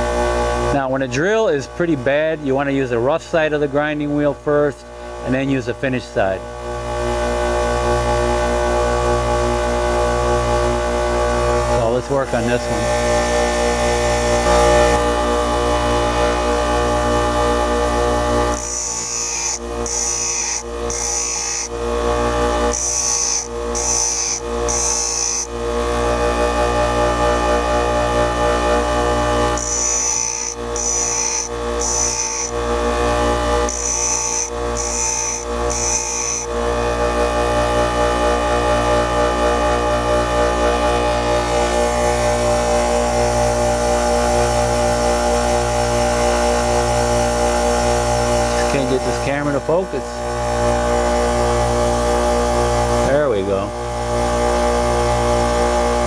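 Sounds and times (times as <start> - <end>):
bench grinder motor hum: 0.0 - 4.0, 4.8 - 56.0
drill bit grinding hiss: 18.2 - 25.6, 29.4 - 36.6.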